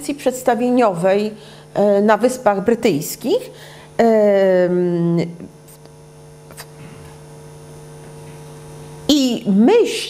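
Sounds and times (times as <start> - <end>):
mains hum: 0.0 - 10.0.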